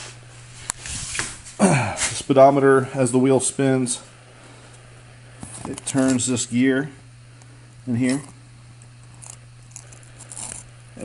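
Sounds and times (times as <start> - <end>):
steady low hum: 0.0 - 11.0
faint clicks and scrapes: 9.0 - 10.7.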